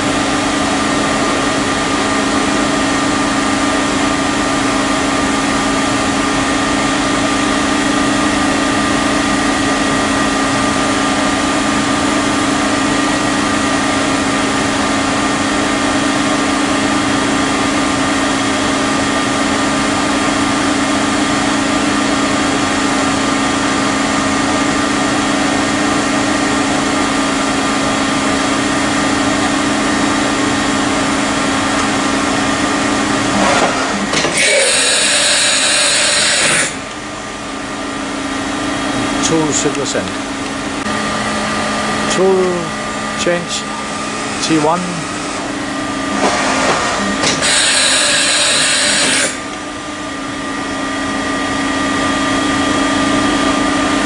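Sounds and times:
machining center hum: 0.0 - 54.0
loud hiss: 34.4 - 36.8, 47.4 - 49.4.

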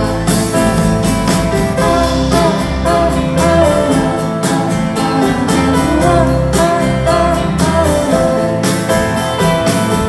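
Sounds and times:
sung vocals: 0.0 - 8.7
live rock band playing: 0.0 - 10.0.

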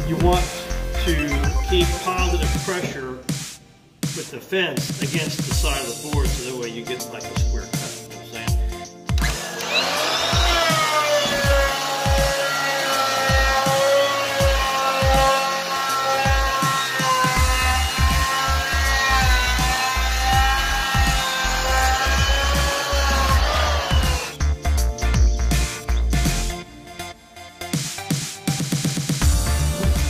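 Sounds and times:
electronic music with bass beat: 0.0 - 9.4, 16.2 - 26.7, 27.7 - 30.0
electric planer motor whine: 9.2 - 24.4.

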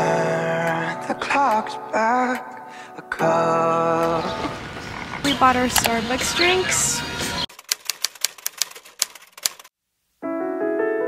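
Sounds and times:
music: 0.0 - 7.5, 10.2 - 11.0
sharp rapid clicks: 7.5 - 9.7.

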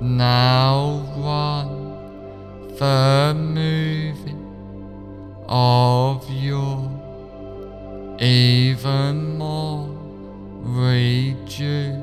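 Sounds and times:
steady drone: 0.0 - 12.0
wavering chant-like notes: 0.0 - 12.0.

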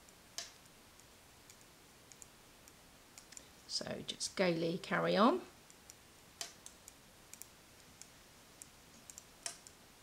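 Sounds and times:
knitting needles clicking: 0.0 - 3.5, 5.6 - 9.8.

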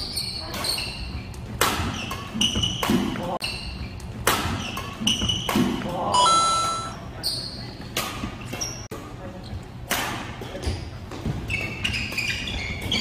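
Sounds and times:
sneakers squeaking on wooden court: 0.0 - 5.6, 6.6 - 9.6, 10.6 - 13.0.

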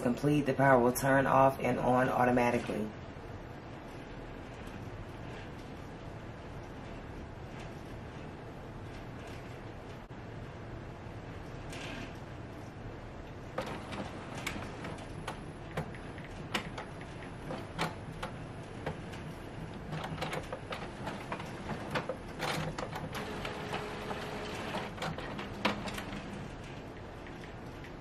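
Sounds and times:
printer whir: 2.6 - 28.0
printer clicks and clunks: 13.5 - 27.8.

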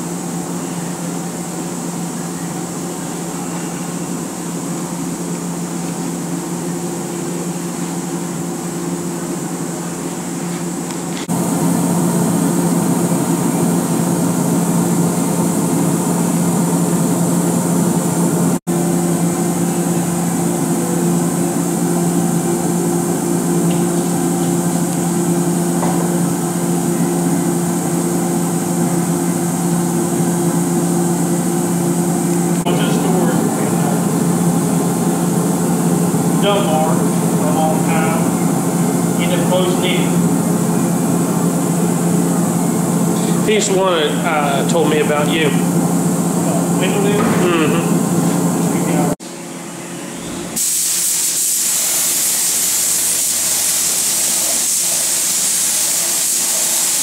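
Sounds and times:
shop machine hum: 0.0 - 57.0.

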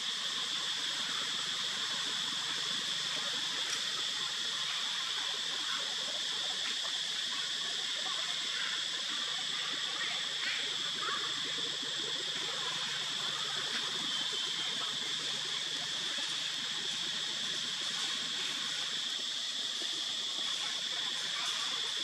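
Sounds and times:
even hiss: 0.0 - 22.0
high-pitched insect drone: 0.0 - 22.0.

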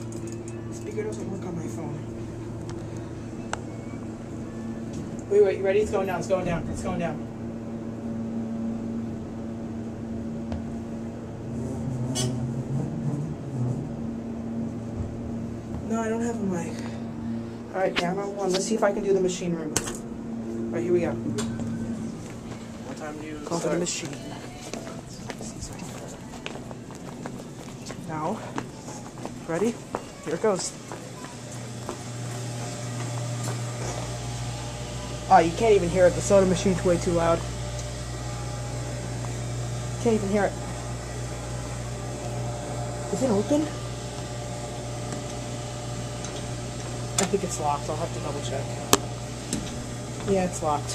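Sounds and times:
elevator cab humming: 0.0 - 50.9.

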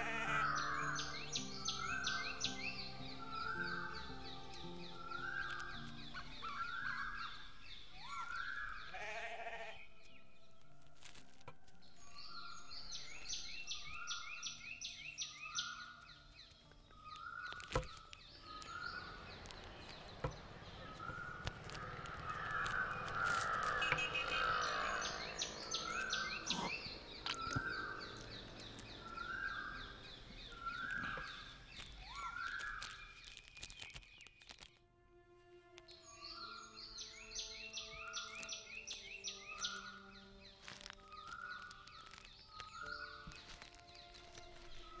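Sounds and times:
crows cawing: 0.0 - 1.0, 8.9 - 9.8, 22.1 - 28.1
birds chirping: 0.0 - 34.8, 35.7 - 45.0.

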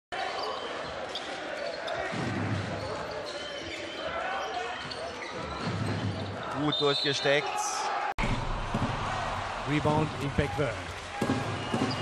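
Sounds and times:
basketball dribbling on hardwood: 11.2 - 12.0.

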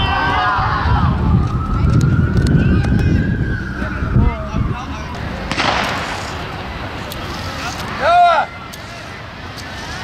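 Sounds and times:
bystanders' voices: 0.0 - 10.0
outdoor background noise: 0.0 - 10.0.

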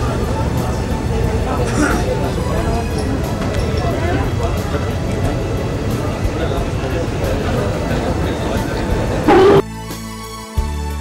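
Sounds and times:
crowd talking: 0.0 - 9.6
music playing: 9.1 - 9.8.

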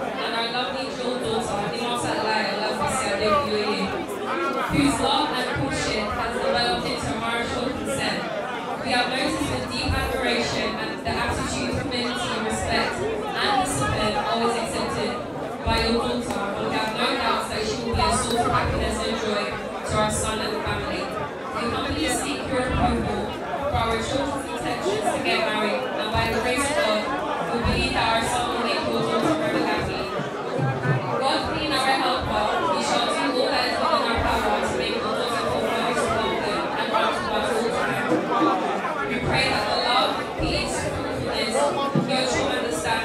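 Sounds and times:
crowd chatter: 0.0 - 43.0
woman speaking over public address: 0.0 - 43.0
woman talking over loudspeakers: 0.1 - 30.3, 30.9 - 38.2, 39.0 - 43.0.

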